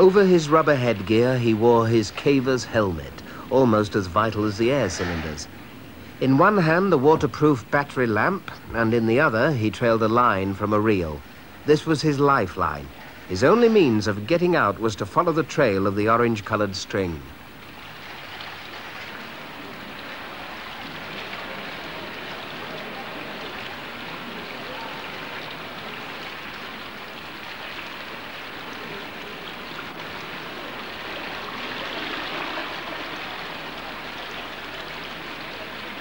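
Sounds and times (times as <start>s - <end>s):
running water in cave: 0.0s - 36.0s.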